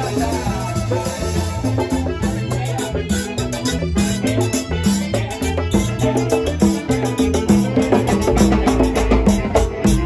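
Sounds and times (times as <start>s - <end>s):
bass line: 0.0s - 10.0s
congas played by hand: 0.0s - 10.0s
live latin band music: 0.0s - 10.0s.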